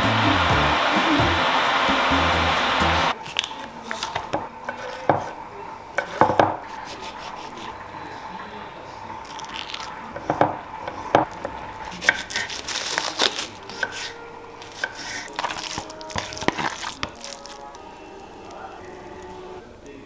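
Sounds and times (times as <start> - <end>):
background music with steady beat: 0.0 - 3.2.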